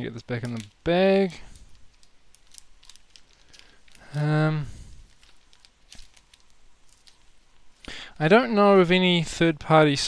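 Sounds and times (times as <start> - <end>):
film sheet handling rustles: 0.2 - 9.0.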